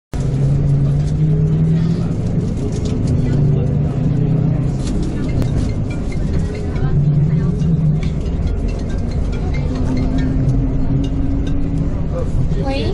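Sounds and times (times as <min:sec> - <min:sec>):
coach engine running: 0:00.1 - 0:12.9
road noise: 0:00.1 - 0:12.9
indistinct voices: 0:00.2 - 0:12.9.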